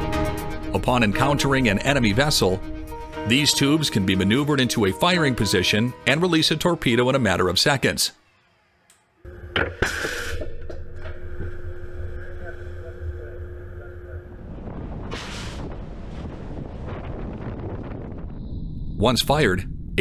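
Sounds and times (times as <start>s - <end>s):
machinery hum: 9.2s - 16.0s
sea rushing along hull: 14.3s - 18.2s.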